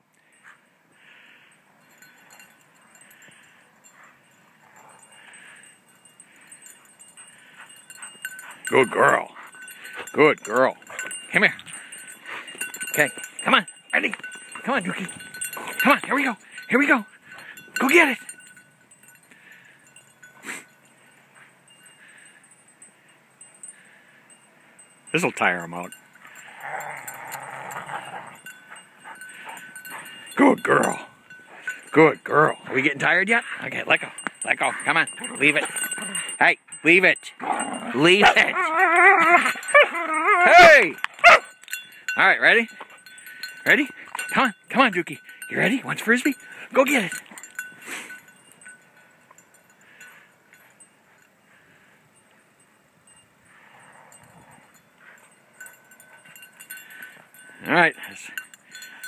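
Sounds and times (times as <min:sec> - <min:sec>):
metallic jingle of tags: 0:00.2 - 0:59.0.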